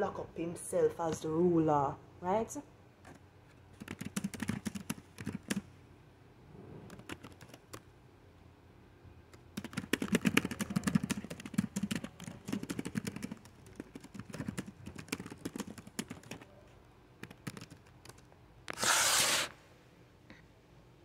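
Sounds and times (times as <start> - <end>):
keyboard typing clicks: 3.8 - 5.6, 6.9 - 7.8, 9.3 - 16.4, 17.2 - 18.3.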